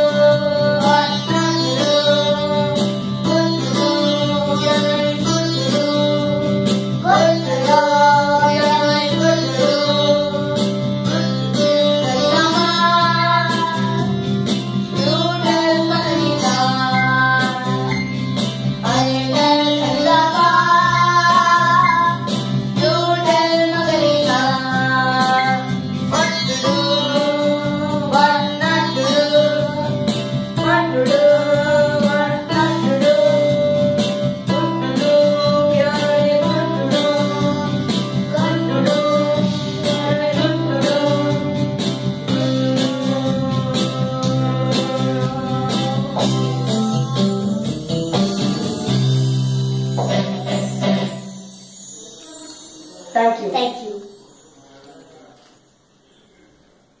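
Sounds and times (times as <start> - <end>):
electronic keyboard melody: 0.0 - 55.9.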